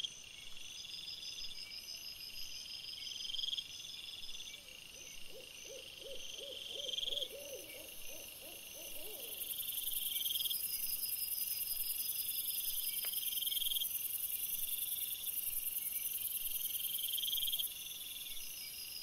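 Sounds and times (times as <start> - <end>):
low pulsing insect calls: 0.0 - 19.0.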